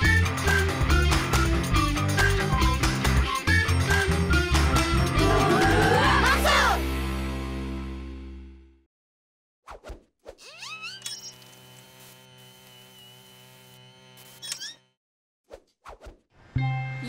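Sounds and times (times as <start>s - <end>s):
background music: 0.0s - 8.8s, 16.6s - 17.0s.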